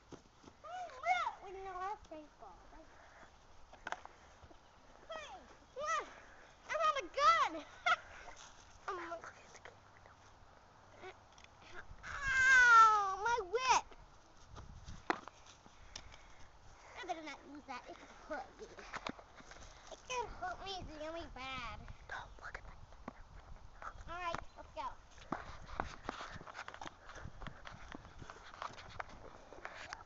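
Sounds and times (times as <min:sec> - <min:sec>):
boy screaming: 0:11.7 - 0:13.8.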